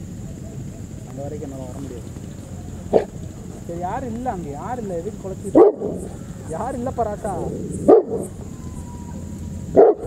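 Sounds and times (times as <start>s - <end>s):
dog barking: 2.9s - 3.2s, 5.5s - 6.1s, 7.8s - 8.4s, 9.7s - 10.0s.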